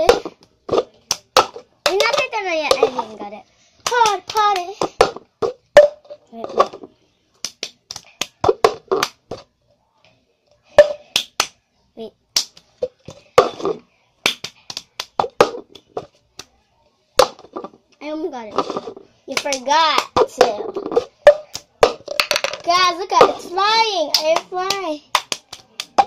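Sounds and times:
hand claps: 3.8 - 4.7, 7.4 - 8.4, 14.2 - 16.5, 24.1 - 26.0.

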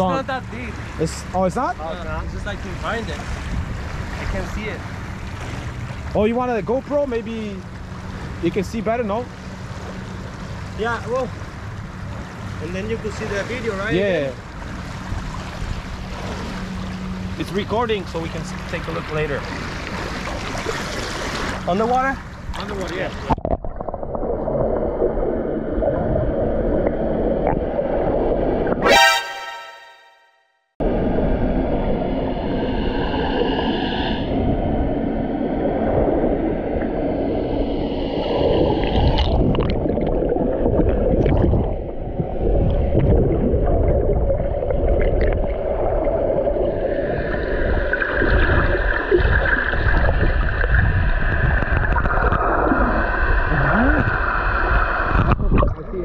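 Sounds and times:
water sloshing and gurgling underwater: 0.0 - 29.8, 30.8 - 56.0
low underwater rumble: 22.2 - 28.8, 30.8 - 56.0
faint high tone: 28.8 - 30.4.

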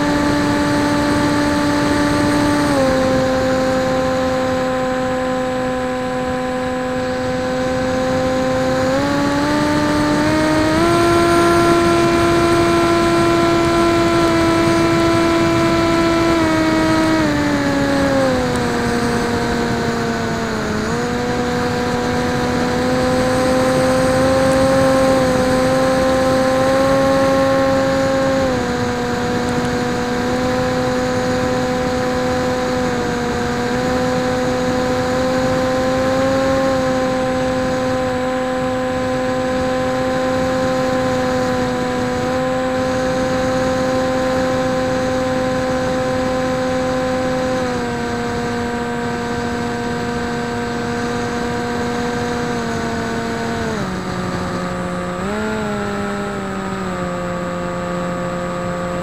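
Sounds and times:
electric motor propeller buzzing: 0.0 - 59.0.

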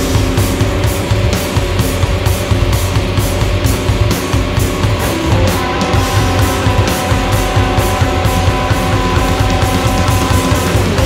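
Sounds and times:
rock band instrumental: 0.0 - 11.0.

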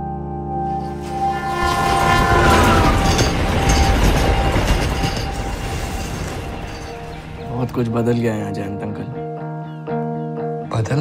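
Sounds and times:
droning tones: 0.8 - 7.5
heavy rumbling noise: 0.9 - 7.8.

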